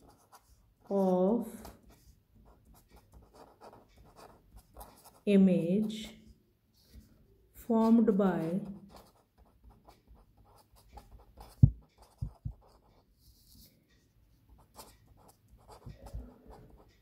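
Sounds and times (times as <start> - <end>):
marker pen scratching paper: 0.0 - 7.1, 7.7 - 13.8, 14.5 - 17.0.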